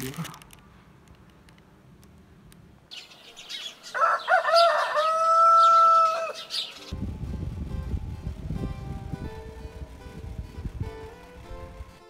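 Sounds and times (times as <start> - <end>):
small birds chirping: 2.9 - 4.8, 5.5 - 7.0
rooster crowing: 3.9 - 6.5.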